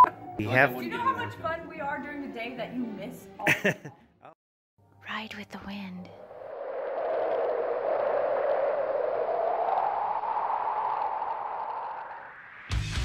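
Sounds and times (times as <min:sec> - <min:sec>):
rising whoosh: 0:06.2 - 0:13.0.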